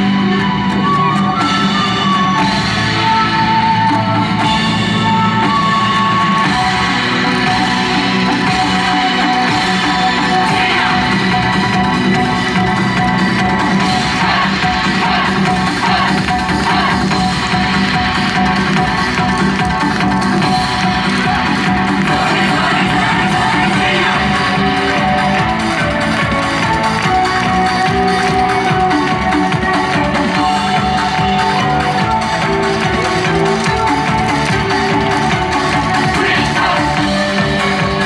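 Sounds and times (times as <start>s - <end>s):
dance music over loudspeakers: 0.0s - 38.0s.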